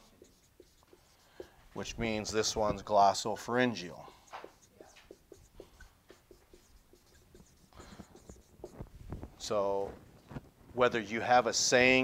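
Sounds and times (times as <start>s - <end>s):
marker writing on whiteboard: 0.0s - 2.9s, 3.7s - 8.9s.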